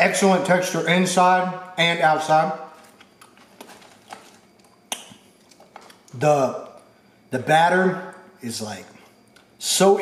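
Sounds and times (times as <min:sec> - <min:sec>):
person chewing fries: 0:02.8 - 0:06.2.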